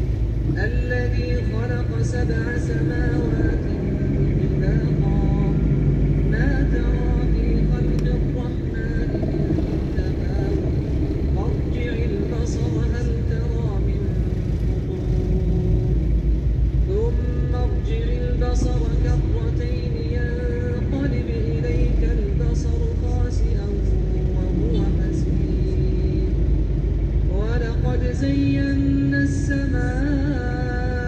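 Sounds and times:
traffic road noise rumble: 0.0s - 31.0s
man reciting in held notes: 0.4s - 31.0s.

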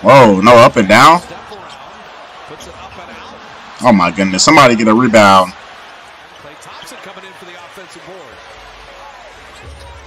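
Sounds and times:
commentator talking: 0.0s - 1.7s, 2.6s - 5.6s
arena crowd noise: 0.0s - 10.0s.

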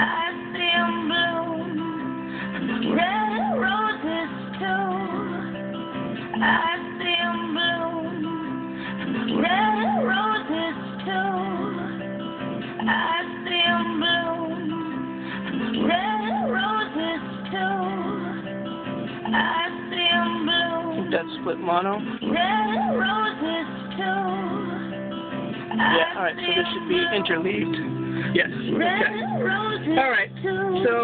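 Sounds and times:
person singing: 0.0s - 31.0s
strummed acoustic guitar: 0.0s - 31.0s.

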